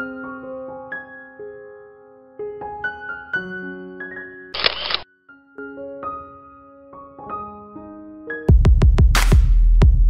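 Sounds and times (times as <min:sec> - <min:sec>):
soft piano music: 0:00.0 - 0:04.5, 0:05.1 - 0:08.8
camera shutter sound effect: 0:04.6 - 0:05.0.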